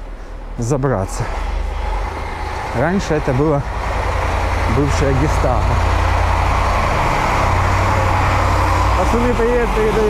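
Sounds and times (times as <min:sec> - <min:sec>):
truck engine rumbling: 0:00.0 - 0:10.0.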